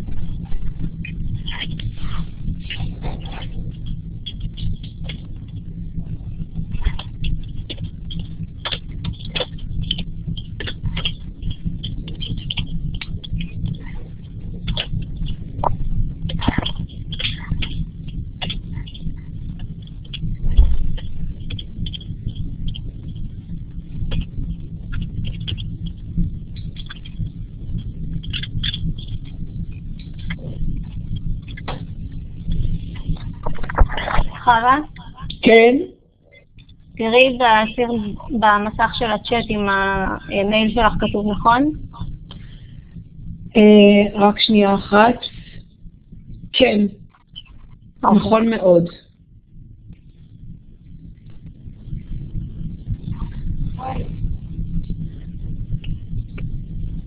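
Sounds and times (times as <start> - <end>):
low hum: 0.0 - 57.0
low rumbling noise: 0.0 - 57.0.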